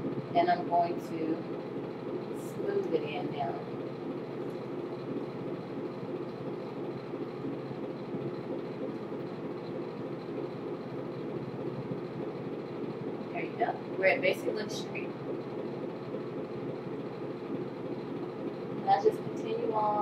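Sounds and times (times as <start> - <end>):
low room hum: 0.0 - 20.0
woman speaking: 0.4 - 1.5, 2.4 - 3.6, 13.3 - 15.1, 18.8 - 20.0.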